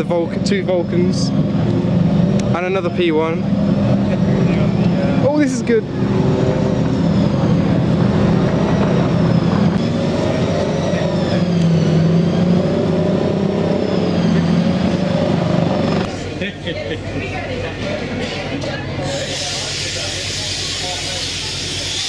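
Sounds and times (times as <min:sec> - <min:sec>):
wavering engine drone: 0:00.0 - 0:22.0.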